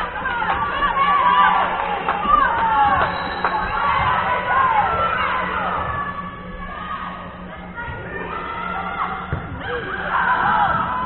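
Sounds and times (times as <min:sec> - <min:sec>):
girls shouting and cheering: 0:00.0 - 0:11.0.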